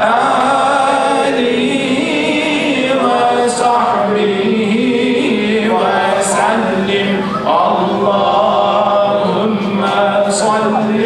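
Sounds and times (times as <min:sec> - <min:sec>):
man chanting into a microphone: 0:00.0 - 0:11.0
voices chanting along: 0:00.0 - 0:11.0.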